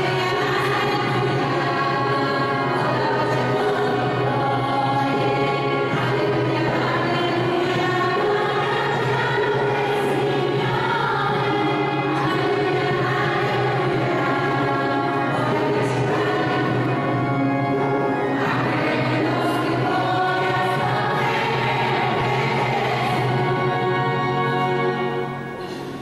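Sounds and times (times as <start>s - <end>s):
choir singing a hymn: 0.0s - 26.0s.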